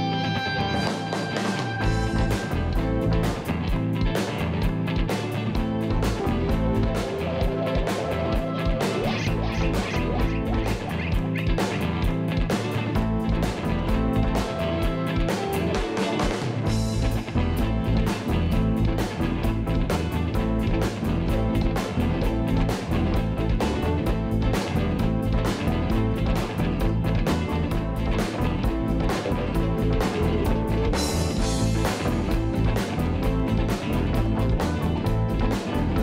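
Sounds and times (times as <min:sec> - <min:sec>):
bass guitar: 0:00.0 - 0:36.0
drum kit: 0:00.0 - 0:36.0
electric guitars: 0:00.0 - 0:36.0.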